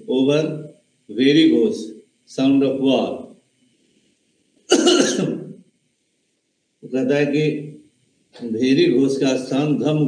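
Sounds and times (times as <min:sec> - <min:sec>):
man clearing throat: 0:04.7 - 0:05.5.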